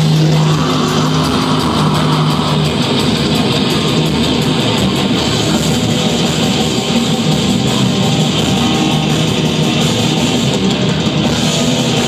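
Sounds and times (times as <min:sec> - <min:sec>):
distorted electric guitars: 0:00.0 - 0:12.0
drums and cymbals: 0:00.0 - 0:12.0.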